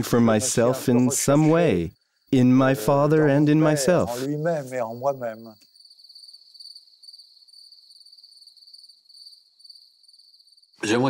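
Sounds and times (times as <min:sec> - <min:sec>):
crickets chirping: 0:00.0 - 0:10.8.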